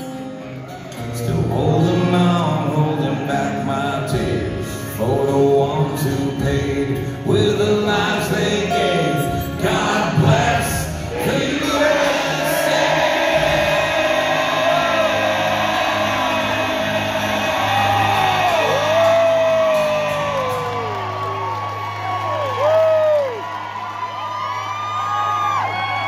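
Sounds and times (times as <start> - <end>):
acoustic guitar music: 0.0 - 21.8
audience whooping and yelling: 11.0 - 26.0.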